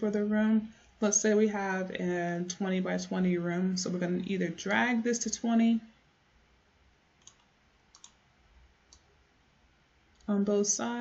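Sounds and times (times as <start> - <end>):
faint computer mouse clicks: 7.2 - 8.2.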